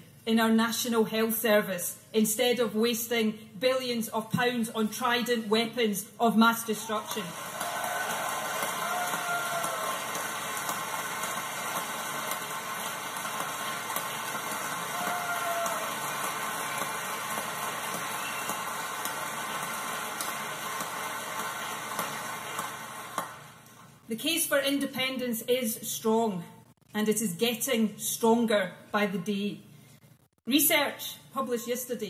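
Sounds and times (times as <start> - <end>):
audience applauding: 7.0 - 23.6.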